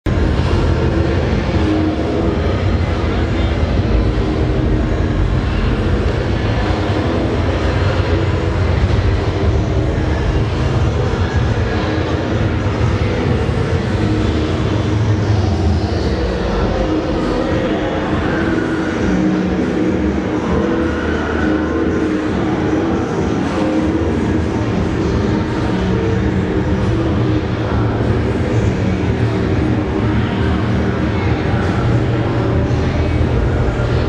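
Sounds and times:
indistinct voices: 0.0s - 34.0s.

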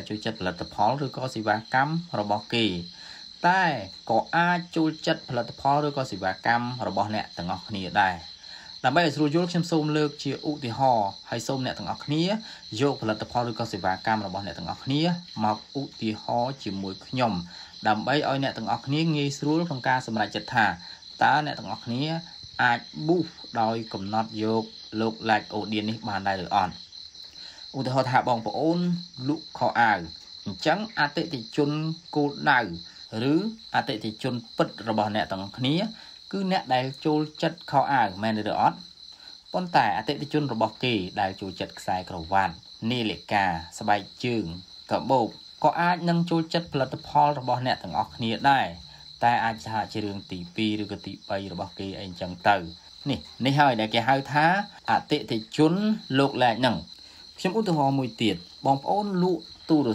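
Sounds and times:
man talking: 0.0s - 26.8s, 27.4s - 59.9s
man speaking: 0.0s - 59.9s.

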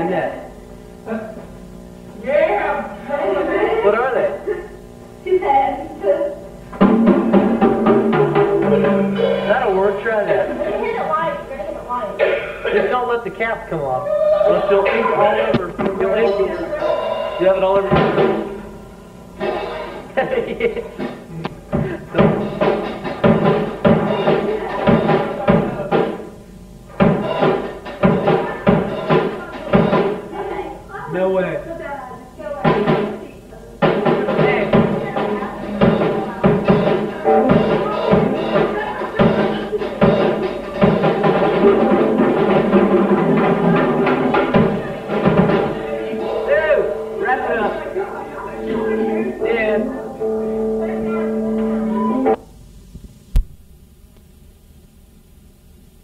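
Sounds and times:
faint tape hiss and hum: 0.0s - 56.0s
garage rock band playing: 6.7s - 10.9s, 19.4s - 26.2s, 27.0s - 30.2s, 33.8s - 52.4s.

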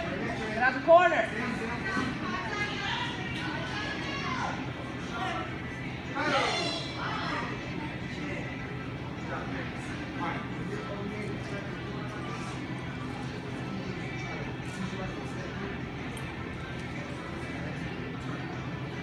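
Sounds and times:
murmur of voices: 0.0s - 19.0s.

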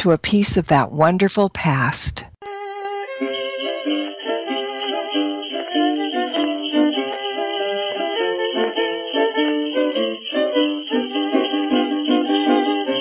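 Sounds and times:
old record holiday music: 2.5s - 13.0s.

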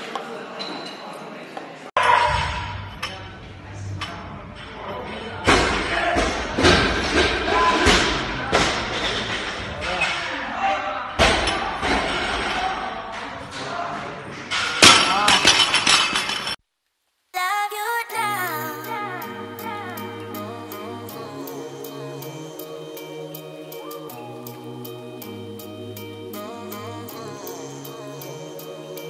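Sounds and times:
music: 17.4s - 29.0s.

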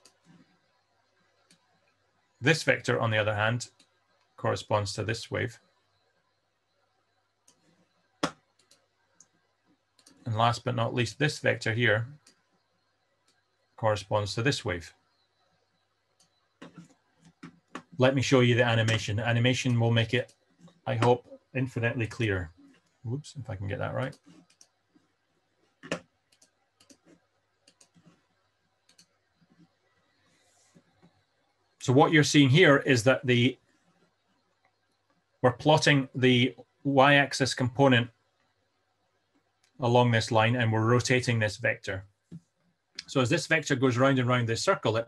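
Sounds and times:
computer mouse clicks: 8.2s - 9.4s, 24.0s - 25.1s, 25.8s - 29.7s.

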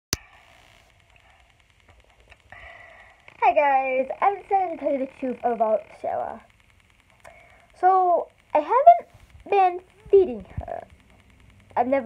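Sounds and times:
faint hum: 0.2s - 12.0s.

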